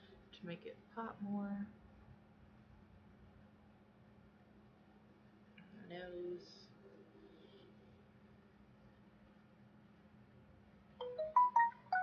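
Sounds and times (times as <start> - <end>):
electronic jingle: 11.0 - 12.0.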